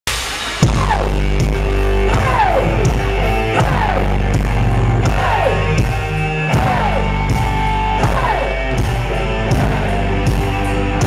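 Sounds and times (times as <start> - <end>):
rock band playing loudly: 0.1 - 11.0.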